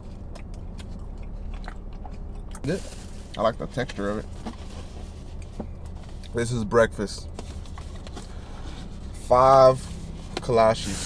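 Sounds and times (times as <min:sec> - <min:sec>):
man chewing food: 0:00.0 - 0:02.6, 0:04.4 - 0:06.4
low hum inside car cabin: 0:00.0 - 0:11.0.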